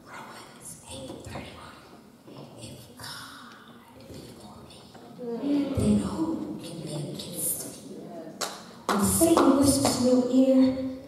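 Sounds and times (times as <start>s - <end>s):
woman speaking into microphone: 2.4s - 8.2s, 8.9s - 11.0s.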